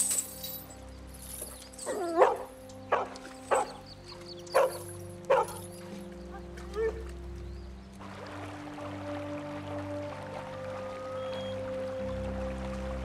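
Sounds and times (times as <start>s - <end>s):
background music with held notes: 0.0s - 13.0s
dog yelping: 1.8s - 3.8s, 4.5s - 5.6s
dog barking: 1.9s - 3.8s, 4.5s - 5.6s.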